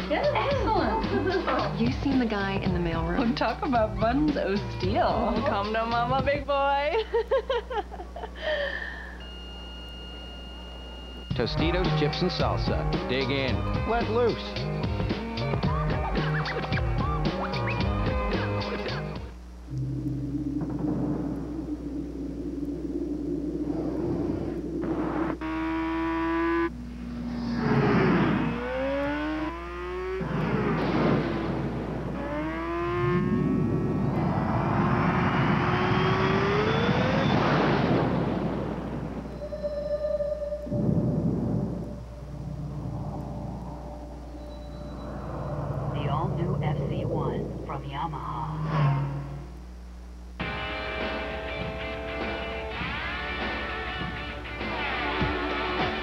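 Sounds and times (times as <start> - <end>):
background music: 0.0 - 6.6, 11.3 - 22.4, 50.4 - 56.0
motorcycle engine revving: 24.0 - 39.2, 48.4 - 49.6, 50.4 - 56.0.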